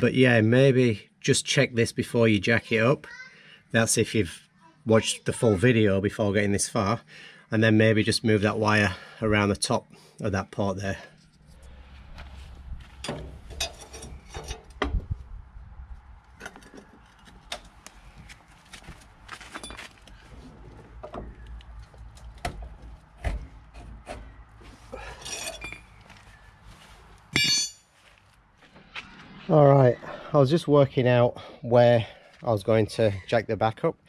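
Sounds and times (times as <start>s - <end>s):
metal tools clinking: 13.0s - 14.7s, 19.5s - 20.0s, 25.1s - 26.0s, 27.4s - 27.9s
metal clatter: 13.0s - 14.9s.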